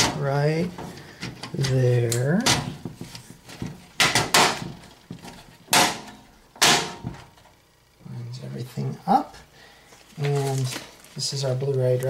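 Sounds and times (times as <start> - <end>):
knocks on steel computer case: 3.6 - 7.3.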